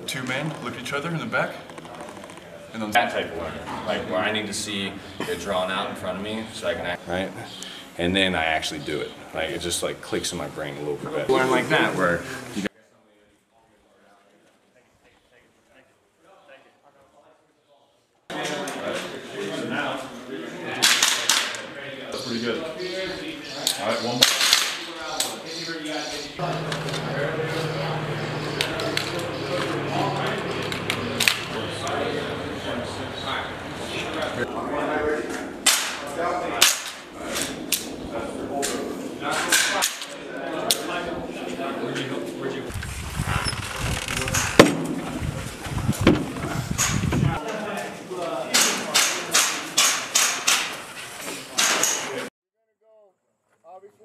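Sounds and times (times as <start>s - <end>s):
indistinct voices talking: 0.0s - 12.7s, 21.9s - 50.6s
sharp cracks: 24.2s - 24.9s, 35.6s - 36.0s, 36.6s - 37.1s
steady low hum: 26.4s - 34.5s.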